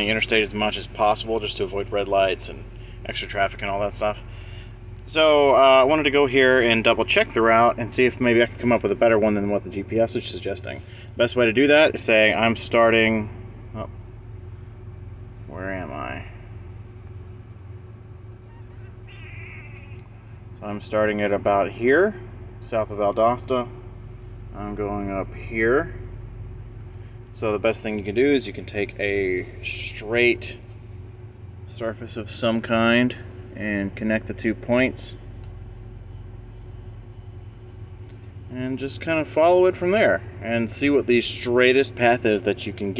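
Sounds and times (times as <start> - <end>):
truck low hum: 0.0 - 42.9
faint high chirp: 18.5 - 20.2.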